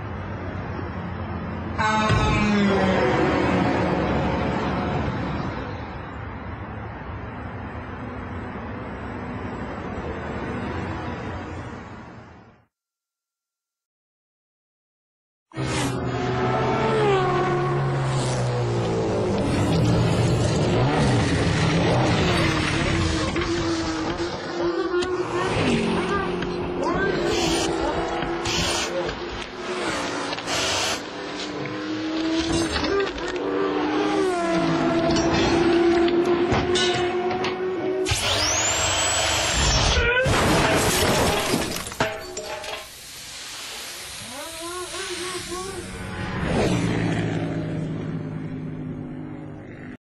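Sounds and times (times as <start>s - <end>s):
impact wrench whining: 27.3s - 28.9s, 38.0s - 40.0s
car crash and crunch: 40.2s - 42.6s.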